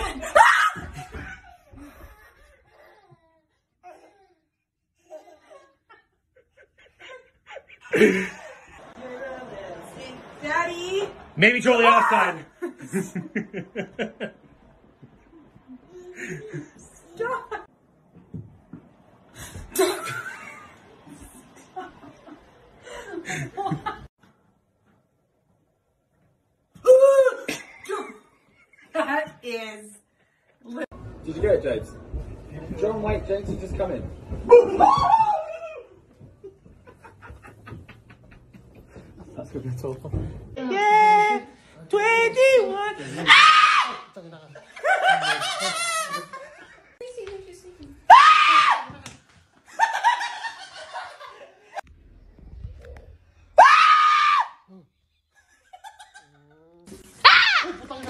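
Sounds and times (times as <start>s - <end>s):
woman screaming: 0.2s - 1.0s, 43.2s - 44.1s, 48.1s - 49.0s, 53.6s - 54.7s, 57.2s - 57.8s.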